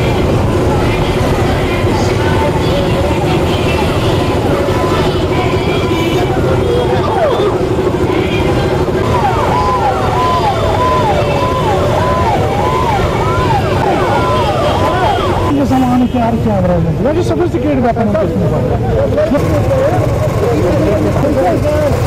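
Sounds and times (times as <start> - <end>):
wailing siren: 0.0 - 15.6
motorcycle engines running: 0.0 - 22.0
yelping siren: 2.4 - 15.6.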